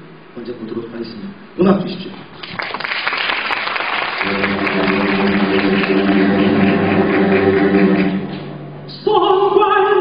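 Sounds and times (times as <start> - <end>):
audience applause: 2.4 - 8.5
backing music low chord: 4.2 - 8.8.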